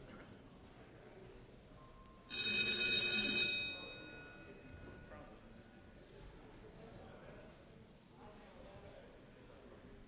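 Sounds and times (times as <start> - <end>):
loud bell ring: 2.3 - 4.8.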